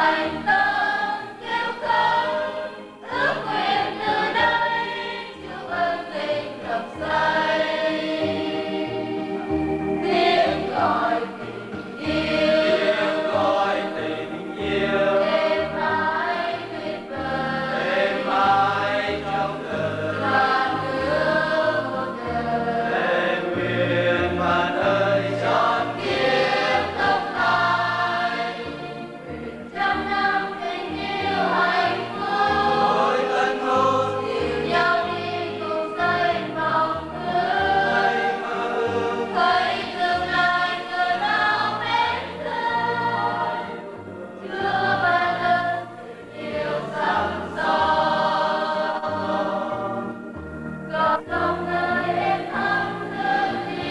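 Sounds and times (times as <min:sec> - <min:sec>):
choir singing: 0:00.0 - 0:53.9.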